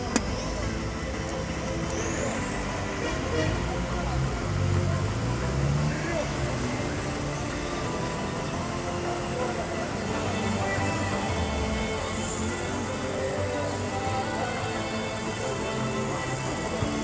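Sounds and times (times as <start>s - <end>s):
spectators talking: 0.0s - 17.0s.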